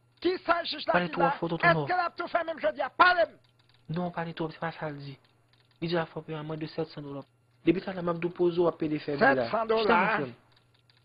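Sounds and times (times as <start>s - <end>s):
man talking heatedly: 0.2s - 3.4s.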